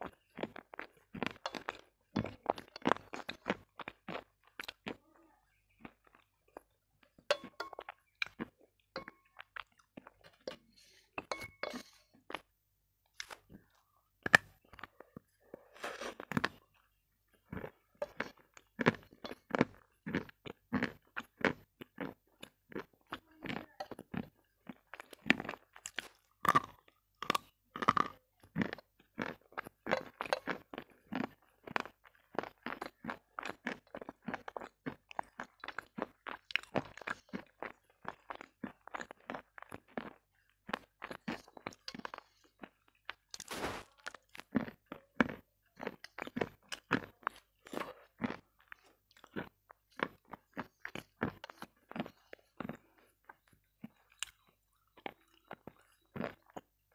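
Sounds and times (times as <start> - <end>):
person chewing crunchy food: 0.0 - 56.9.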